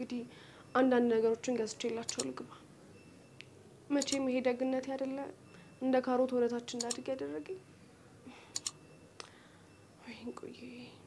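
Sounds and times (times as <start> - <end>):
woman speaking: 0.0 - 2.6, 3.9 - 7.6, 10.0 - 11.0
faint clicks: 8.5 - 9.4.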